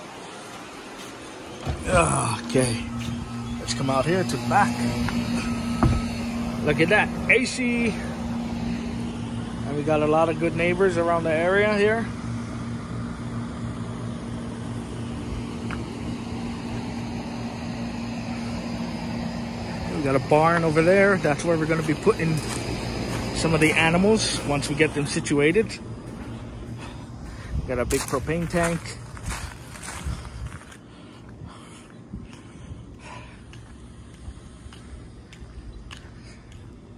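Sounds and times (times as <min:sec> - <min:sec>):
footsteps walking: 0:00.0 - 0:06.9, 0:20.3 - 0:36.9
fan whooshing: 0:00.0 - 0:33.3
compressor humming: 0:00.0 - 0:36.9
steady low rumble: 0:00.0 - 0:36.9.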